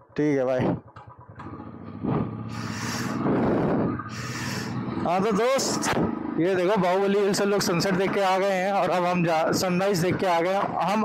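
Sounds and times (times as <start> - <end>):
motorcycle engine accelerating: 0.6 - 9.2
wind gusts on microphone: 2.0 - 4.8.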